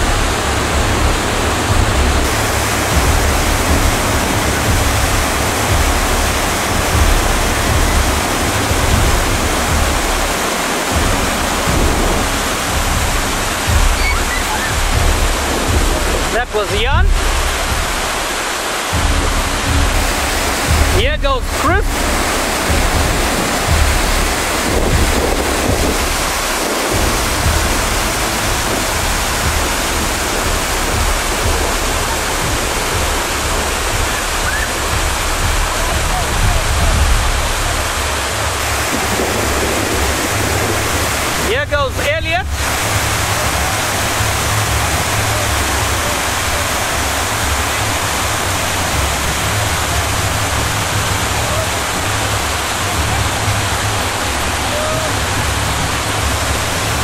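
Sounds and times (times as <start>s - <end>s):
whitewater rapids rushing: 0.0s - 57.0s.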